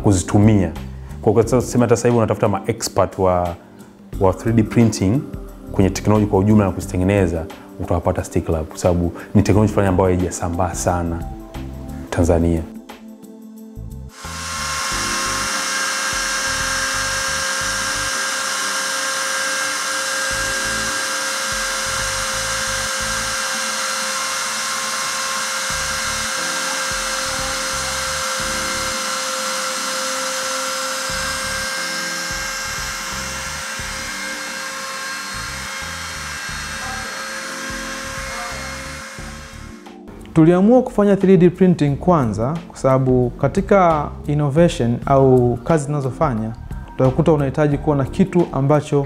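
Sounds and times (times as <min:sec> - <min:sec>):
background music: 0:00.0 - 0:49.0
rotary tool high-pitched whine: 0:14.1 - 0:40.0.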